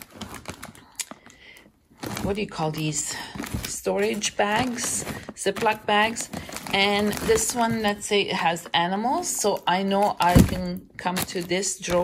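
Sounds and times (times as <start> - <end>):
plastic bag rustling and crinkling: 0.0 - 12.0.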